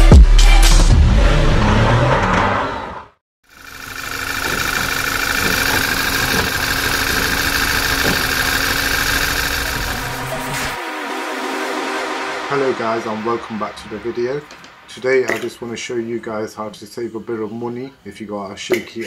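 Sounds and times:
car engine idling rough: 3.5 - 10.8
electronic music with sweeps: 9.0 - 15.2.

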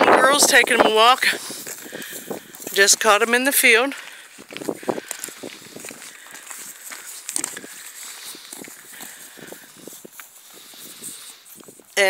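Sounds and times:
hooves and footsteps on gravel: 0.0 - 12.0.

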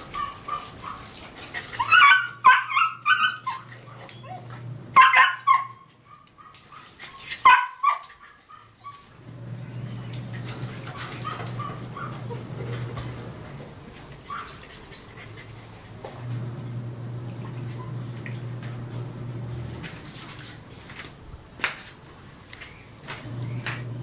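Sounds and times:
dog barking: 0.1 - 1.1, 1.9 - 3.4, 5.0 - 9.0, 10.9 - 12.4, 14.3 - 14.6.

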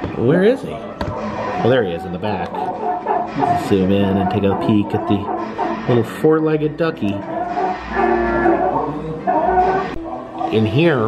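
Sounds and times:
drawn-out animal call: 2.6 - 6.0, 7.2 - 10.2.

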